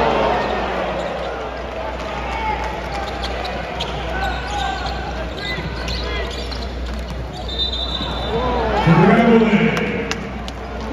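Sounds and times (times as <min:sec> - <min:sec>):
crowd chatter: 0:00.0 - 0:10.9
referee's whistle: 0:07.4 - 0:08.4.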